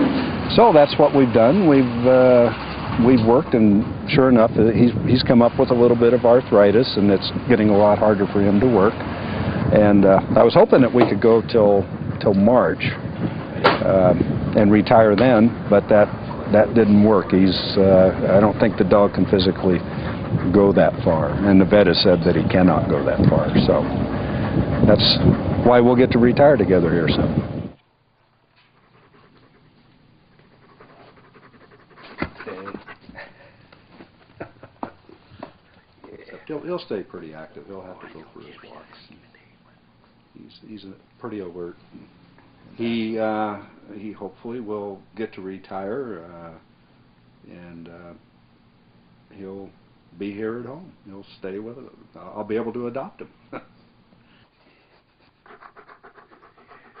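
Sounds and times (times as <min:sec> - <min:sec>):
dog panting: 0:15.8 - 0:27.8, 0:28.6 - 0:33.6, 0:54.7 - 0:57.0.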